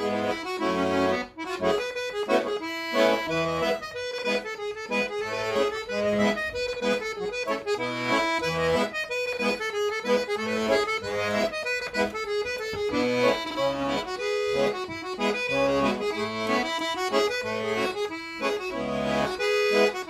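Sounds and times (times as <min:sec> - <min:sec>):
accordion playing folk tune: 0:00.0 - 0:20.0.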